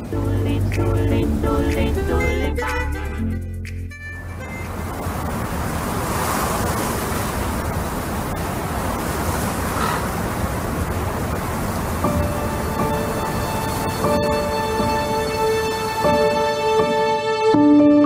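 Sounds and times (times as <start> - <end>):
steady rushing noise: 0.0 - 2.9, 4.2 - 17.3
sustained musical tones: 0.0 - 5.4, 12.0 - 18.0.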